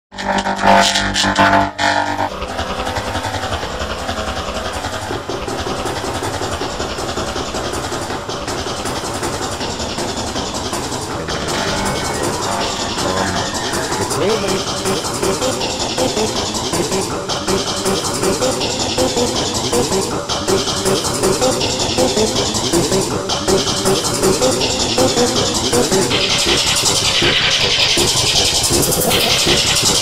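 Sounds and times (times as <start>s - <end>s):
electronic music: 0.1s - 2.4s, 11.1s - 15.4s.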